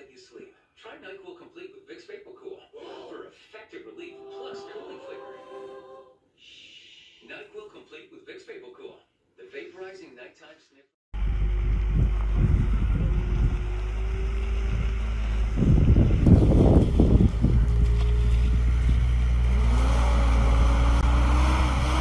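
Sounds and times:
wind buffeting microphone: 11.2s - 21.0s
diesel engine running: 11.2s - 22.0s.

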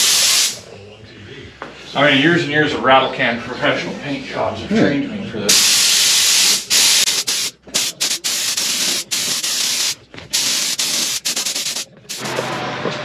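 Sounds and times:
paint spray gun hissing: 0.0s - 0.6s, 5.5s - 12.6s.

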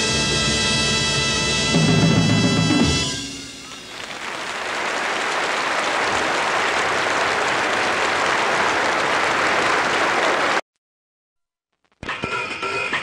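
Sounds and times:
audience applauding: 3.6s - 10.6s.

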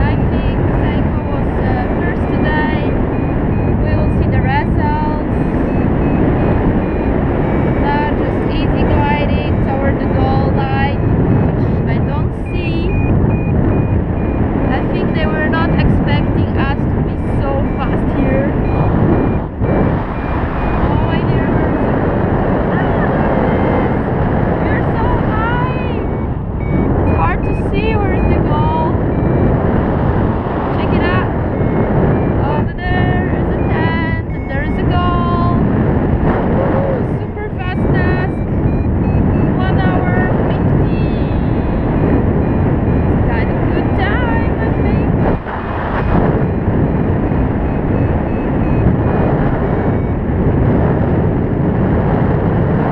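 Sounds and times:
variometer short beeps: 0.0s - 52.5s
wind noise on microphone: 0.0s - 52.9s.

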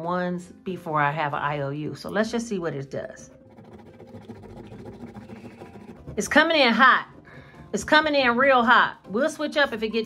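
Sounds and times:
fingernail scratching sticker: 3.3s - 6.6s.

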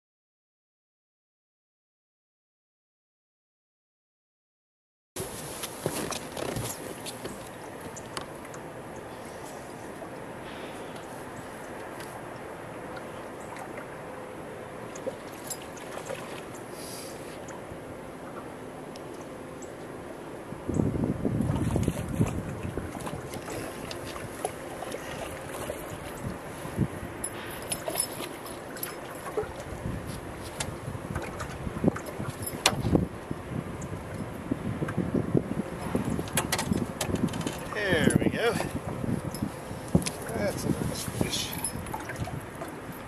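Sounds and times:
knocks and clicks on boat: 5.2s - 8.7s, 27.2s - 33.2s, 35.7s - 40.4s
water noise: 5.2s - 43.0s
wind on microphone: 20.6s - 27.5s, 29.3s - 43.0s.

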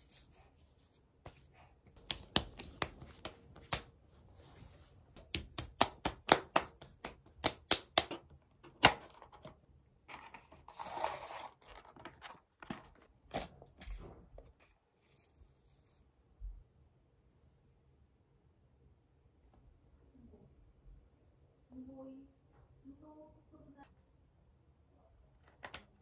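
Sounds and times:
sachet sliding out of paper box: 10.6s - 11.9s.

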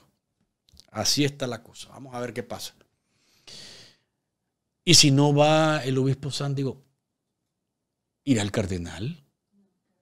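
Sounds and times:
man speaking: 0.8s - 2.8s, 4.8s - 6.9s, 8.2s - 9.3s
man breathing into microphone: 3.0s - 4.1s.

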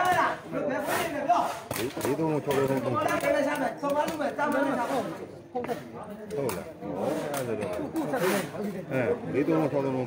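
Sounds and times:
men talking and calling out: 0.0s - 10.0s.

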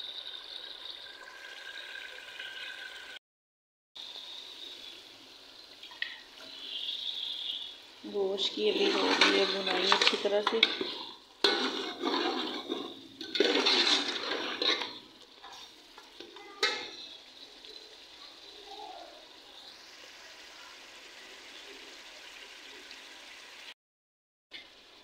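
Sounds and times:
meat sizzling in a pot: 4.0s - 23.8s, 24.6s - 25.0s
spoon stirring and scraping pot: 8.4s - 17.2s.

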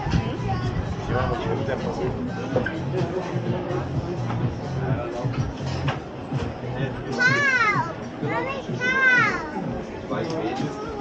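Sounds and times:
street chatter: 0.0s - 11.0s.

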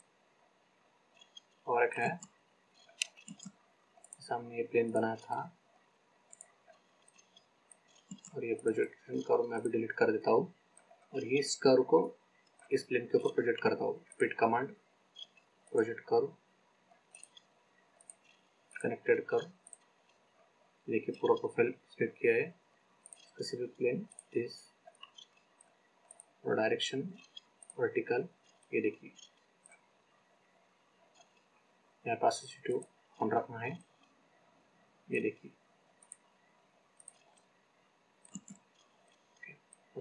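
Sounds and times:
computer mouse clicks: 1.1s - 4.3s, 6.2s - 9.7s, 12.4s - 13.4s, 15.1s - 15.8s, 16.9s - 20.2s, 23.0s - 23.4s, 24.0s - 26.4s, 27.1s - 29.9s, 31.0s - 31.5s, 35.9s - 36.3s, 36.9s - 37.5s, 38.2s - 40.0s.

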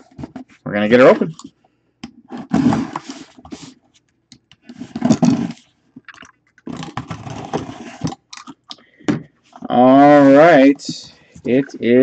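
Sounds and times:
cardboard scraping and rustling: 2.3s - 3.8s, 4.7s - 5.7s, 6.7s - 8.2s, 9.5s - 11.7s.

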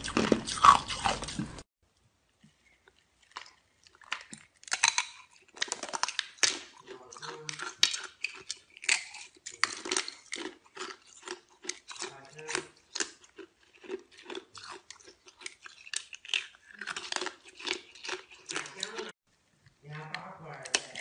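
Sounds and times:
ice being chewed: 0.0s - 1.7s, 2.5s - 19.2s.

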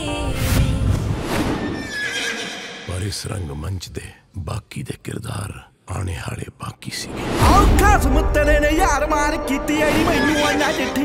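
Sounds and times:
horse whinnying: 1.8s - 2.9s.

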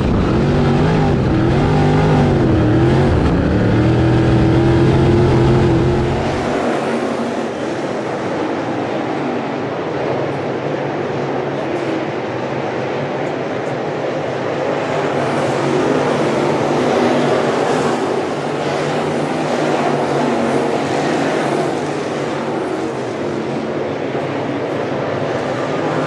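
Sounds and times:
race car engines droning: 0.0s - 26.0s.

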